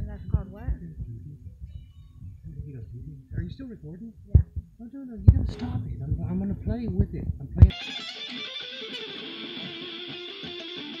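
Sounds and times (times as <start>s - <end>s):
electric guitar sustained notes: 7.7s - 11.0s.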